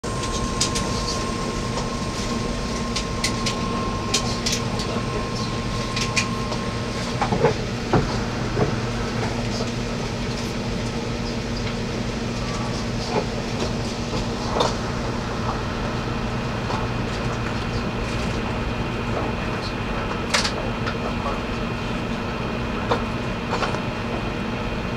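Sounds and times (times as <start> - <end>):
train motors and wheels humming: 0.0 - 24.9
thin high whine: 0.1 - 9.2
track clicks and knocks: 0.1 - 9.8.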